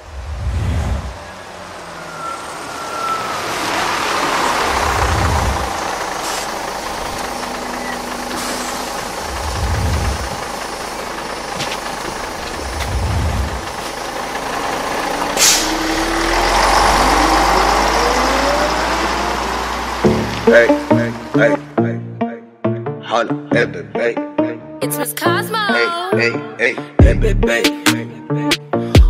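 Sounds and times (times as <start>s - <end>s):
rushing whoosh: 0.0s - 6.8s
bus engine rising in pitch: 0.0s - 29.0s
bus air brake hiss: 6.2s - 6.6s, 8.3s - 8.9s, 15.4s - 15.8s.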